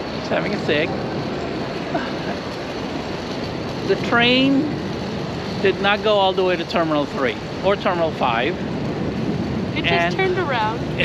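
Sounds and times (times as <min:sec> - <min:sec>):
outdoor rumble and hiss: 0:00.0 - 0:11.0.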